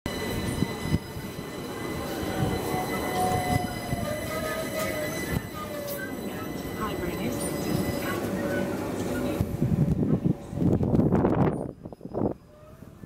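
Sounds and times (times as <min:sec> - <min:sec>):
electric train whine: 0:00.1 - 0:13.0.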